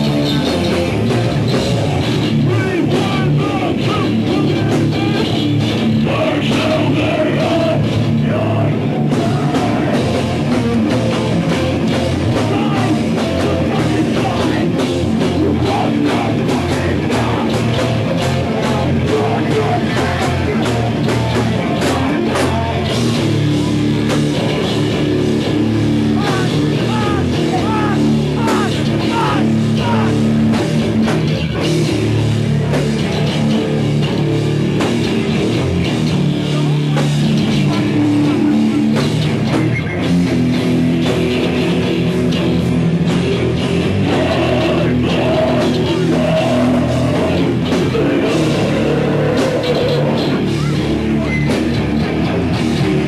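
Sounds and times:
distorted electric guitars: 0.0s - 53.0s
drum kit: 0.0s - 53.0s
live heavy rock band: 0.0s - 53.0s.

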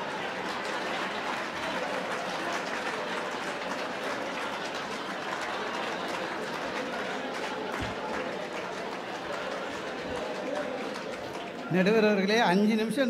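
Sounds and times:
audience applauding: 0.0s - 12.6s.

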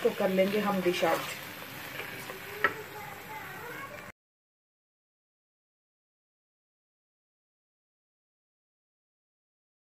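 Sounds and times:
pan sizzling: 0.0s - 4.1s
wooden spoon stirring in wok: 0.0s - 4.1s.

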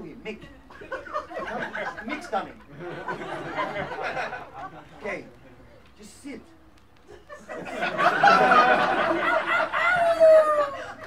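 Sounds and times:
people laughing: 0.7s - 5.2s, 7.0s - 11.0s
high cackling laugh: 7.1s - 11.0s.

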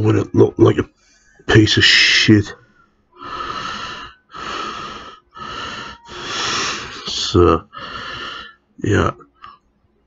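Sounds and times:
man breathing heavily: 3.1s - 8.7s.

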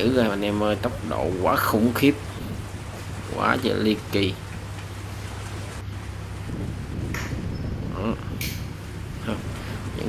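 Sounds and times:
choppy sea washing: 0.0s - 10.0s
wind buffeting microphone: 0.0s - 10.0s.

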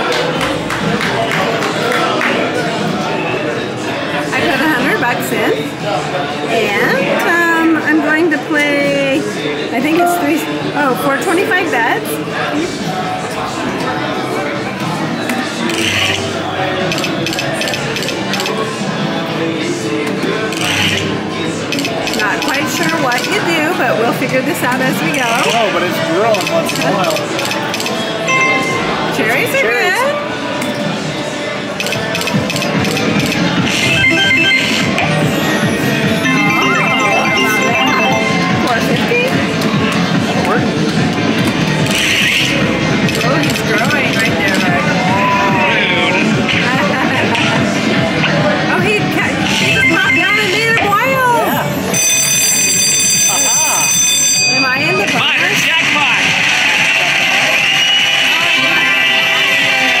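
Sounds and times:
slot machine electronic music: 9.8s - 10.8s, 28.3s - 30.0s, 32.2s - 40.4s, 49.3s - 53.2s
slot machine chiming tones: 9.8s - 10.9s, 28.3s - 30.0s, 33.5s - 40.0s, 49.4s - 55.1s.

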